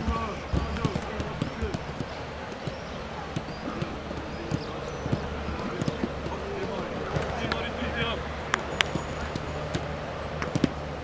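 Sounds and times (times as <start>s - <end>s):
football being kicked: 0.0s - 10.8s
footsteps running on grass: 0.0s - 11.0s.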